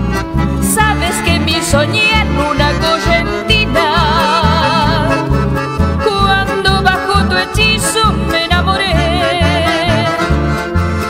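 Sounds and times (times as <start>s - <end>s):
accordion: 0.0s - 11.0s
bass: 0.0s - 11.0s
guitar: 0.0s - 11.0s.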